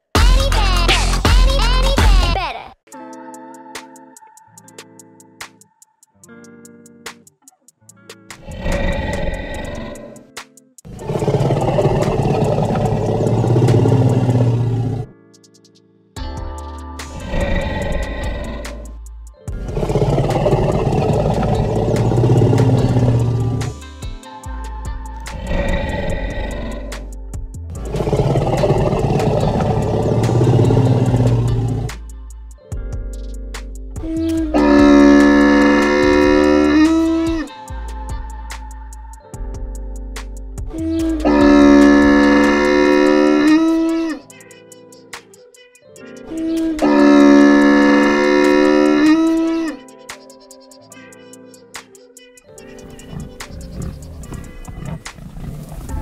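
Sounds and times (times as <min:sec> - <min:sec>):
background music: 0:00.0 - 0:56.0
walrus pulsing growl: 0:08.4 - 0:10.2, 0:10.9 - 0:15.1, 0:17.2 - 0:18.9, 0:19.6 - 0:23.8, 0:25.3 - 0:27.1, 0:27.7 - 0:32.0, 0:34.5 - 0:37.5, 0:40.7 - 0:44.2, 0:46.4 - 0:49.8, 0:52.8 - 0:56.0
camel calling: 0:08.5 - 0:10.2, 0:10.9 - 0:15.1, 0:19.7 - 0:23.7, 0:27.8 - 0:31.9, 0:34.6 - 0:37.5, 0:40.8 - 0:44.2, 0:46.3 - 0:49.8, 0:52.7 - 0:56.0.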